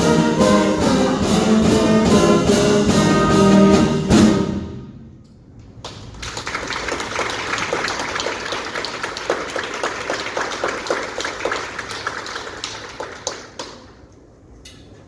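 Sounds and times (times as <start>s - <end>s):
audience applauding: 5.8s - 14.0s.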